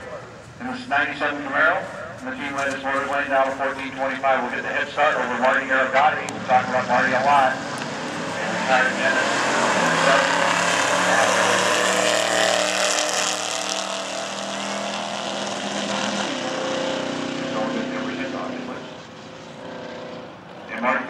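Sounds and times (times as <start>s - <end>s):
racing car engines accelerating: 0.0s - 21.0s.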